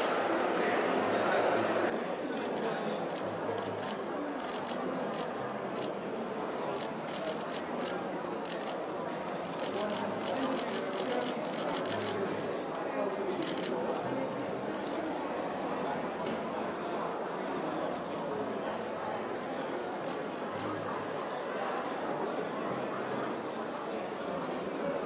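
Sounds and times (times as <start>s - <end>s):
murmur of people talking: 0.0s - 25.0s.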